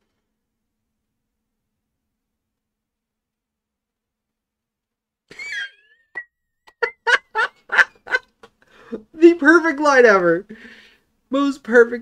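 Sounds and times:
person laughing: 0:05.3 - 0:05.9, 0:06.7 - 0:08.3.

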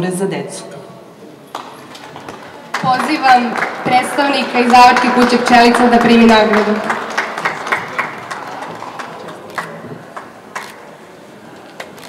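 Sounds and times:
hand clapping: 0:01.5 - 0:10.8.

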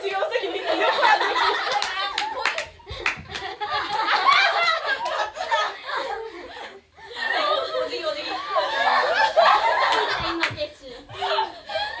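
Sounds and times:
handclaps: 0:01.6 - 0:05.2, 0:09.8 - 0:10.6
girls' excited voices: 0:07.2 - 0:12.0.

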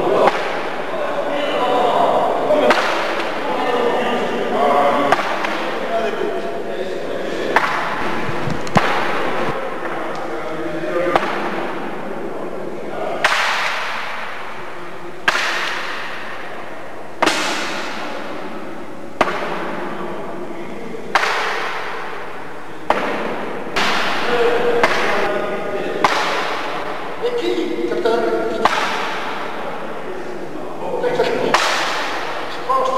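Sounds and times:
murmur of voices: 0:00.0 - 0:32.9
sharp knocks with hiss: 0:13.2 - 0:14.6, 0:17.2 - 0:18.1, 0:22.8 - 0:25.3, 0:28.6 - 0:29.4, 0:31.5 - 0:32.5.

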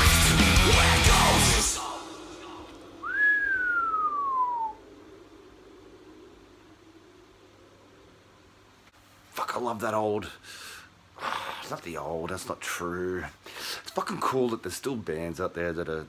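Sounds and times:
thrash metal music: 0:00.0 - 0:02.6
whistled note sliding down: 0:03.0 - 0:05.6.

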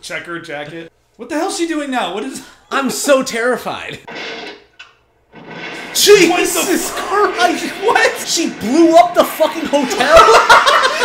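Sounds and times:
building explosion rush: 0:05.3 - 0:10.7
person laughing: 0:09.8 - 0:11.0.

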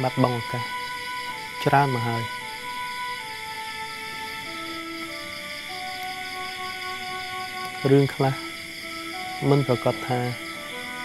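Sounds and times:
man speaking: 0:00.0 - 0:00.7, 0:01.6 - 0:02.4, 0:07.8 - 0:08.4, 0:09.4 - 0:10.4
night insects chirring: 0:00.0 - 0:11.0
soft background music: 0:00.0 - 0:11.0.

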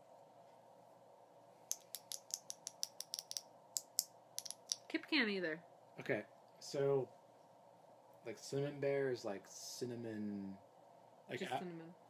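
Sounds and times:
faint steady hum: 0:00.0 - 0:12.0
light sharp clicks and taps: 0:01.7 - 0:04.9.

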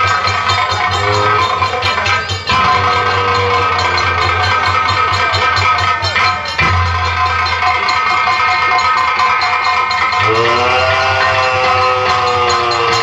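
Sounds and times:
barrel drum beating: 0:00.0 - 0:13.0
sustained melodic tones: 0:00.0 - 0:13.0.

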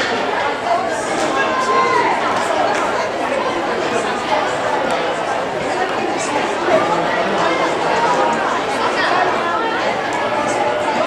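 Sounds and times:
overlapping voices talking: 0:00.0 - 0:11.0.

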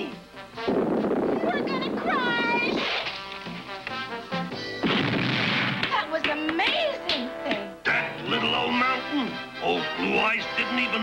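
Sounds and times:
loud rushing crash: 0:04.8 - 0:05.9
sharp hit: 0:04.8 - 0:06.0
cartoon soundtrack music: 0:07.0 - 0:11.0.

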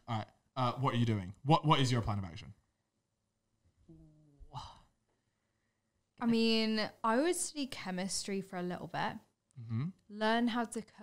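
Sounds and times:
person humming: 0:09.6 - 0:09.9.

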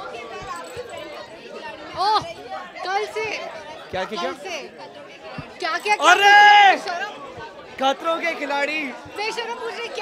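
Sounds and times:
voices chattering: 0:00.0 - 0:10.0.

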